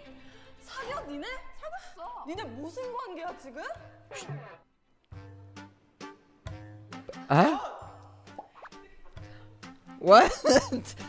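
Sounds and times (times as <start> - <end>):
light background music: 0.0 - 11.0
person exclaiming loudly: 7.3 - 7.9.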